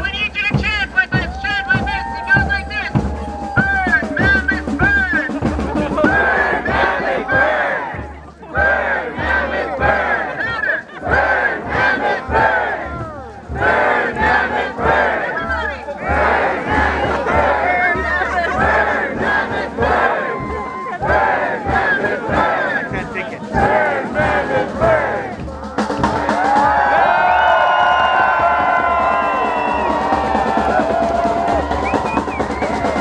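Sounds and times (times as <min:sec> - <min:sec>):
steady drumbeat: 0:00.0 - 0:33.0
crowd shouting and whooping: 0:01.0 - 0:04.4, 0:09.7 - 0:33.0.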